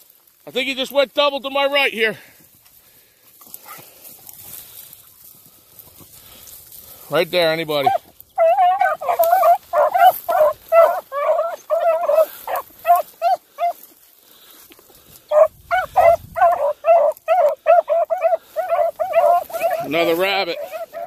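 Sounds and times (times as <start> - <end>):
hound baying: 7.8 - 13.9, 15.3 - 21.0.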